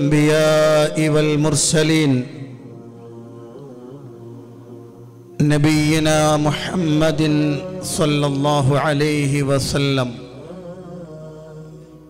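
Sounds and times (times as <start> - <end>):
faint steady hum: 0.0 - 12.0
man chanting: 0.0 - 12.0.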